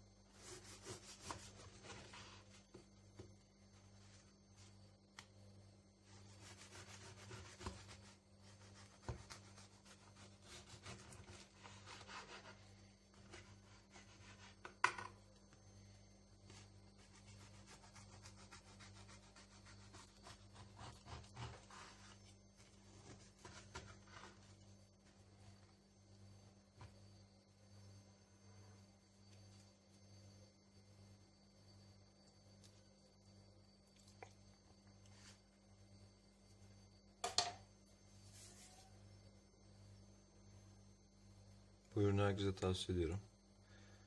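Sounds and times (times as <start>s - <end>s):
knife sawing through bread: 0.4s - 1.9s, 6.3s - 14.5s, 17.0s - 22.2s.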